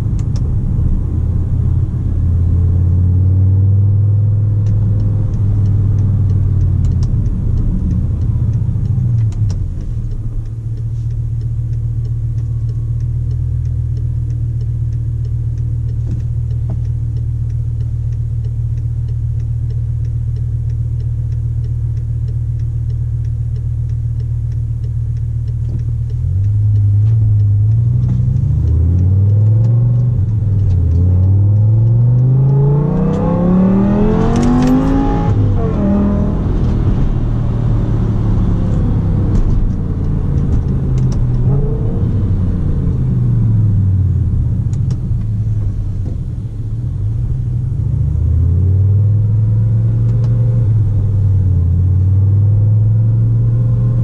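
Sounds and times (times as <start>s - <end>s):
car engine heard from cabin: 0.0s - 54.0s.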